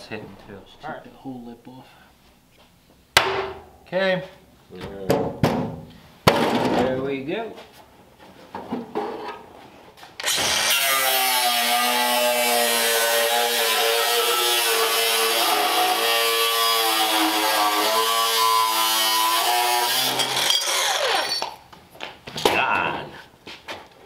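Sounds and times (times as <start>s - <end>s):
cut-off tool cutting steel: 10.2s - 21.5s.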